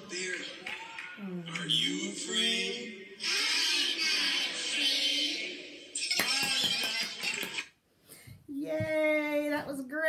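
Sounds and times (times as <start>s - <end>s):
hand claps: 0.2s - 1.2s, 6.1s - 7.7s.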